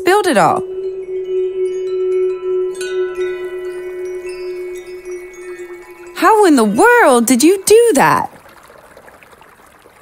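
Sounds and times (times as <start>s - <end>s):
bright chime strike: 0.0s - 7.8s
held low tone: 0.0s - 8.4s
high ringing notes: 0.0s - 8.4s
shimmering wind chimes: 0.0s - 8.4s.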